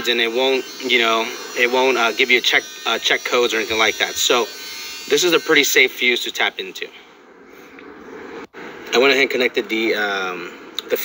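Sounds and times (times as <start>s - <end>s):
person speaking: 0.0s - 4.5s
faint steady hiss: 0.0s - 11.0s.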